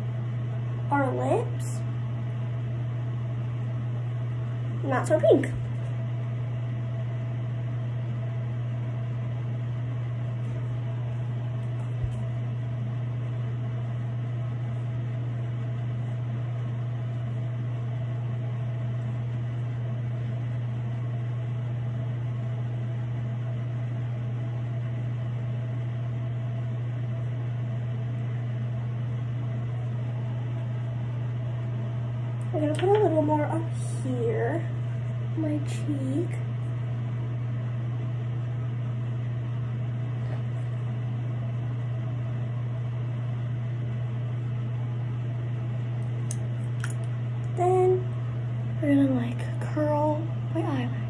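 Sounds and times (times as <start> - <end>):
ventilation fan hum: 0.0 - 51.0.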